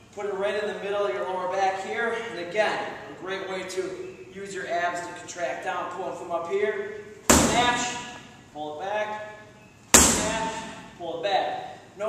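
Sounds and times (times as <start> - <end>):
sledgehammer hitting tire: 7.3 - 8.1, 9.9 - 10.8.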